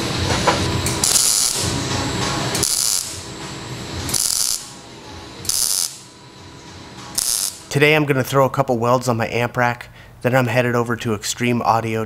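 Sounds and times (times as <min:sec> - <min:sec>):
welding arc crackling: 0:00.8 - 0:01.8, 0:02.6 - 0:03.3, 0:04.1 - 0:04.8, 0:05.4 - 0:06.1, 0:07.2 - 0:07.7.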